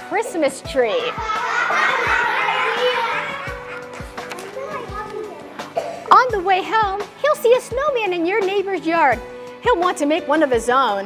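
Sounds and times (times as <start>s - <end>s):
soft background music with beat: 0.0s - 11.0s
children chattering and laughing: 1.0s - 6.2s.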